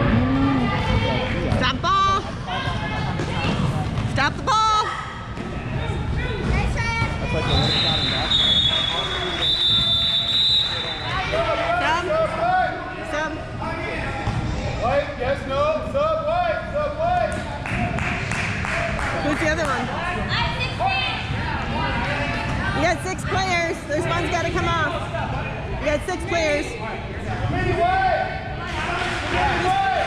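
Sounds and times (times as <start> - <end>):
people talking and calling out: 0.0 - 30.0.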